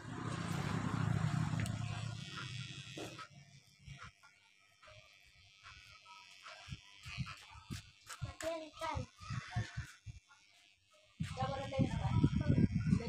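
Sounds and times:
electric hair clippers buzzing: 0.0 - 13.0.

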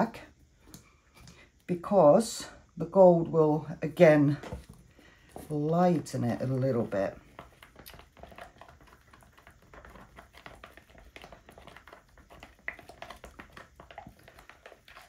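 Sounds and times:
stick scraping plastic cup: 4.4 - 15.0.

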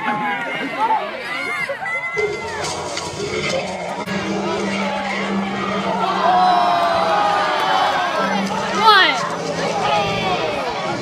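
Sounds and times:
crowd of students shouting: 4.6 - 11.0.

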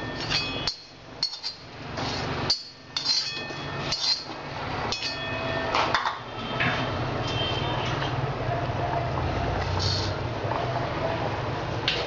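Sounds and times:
spoon clinking on iron pan: 2.5 - 4.3.

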